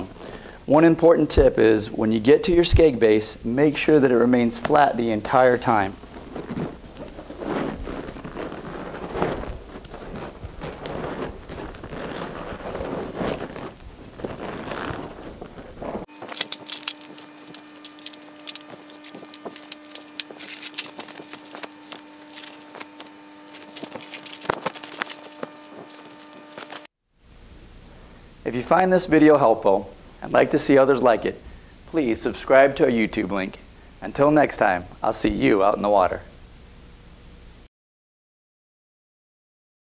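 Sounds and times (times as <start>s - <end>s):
steady hum: 0.0s - 37.7s
rubberised fabric rustling: 4.8s - 26.9s.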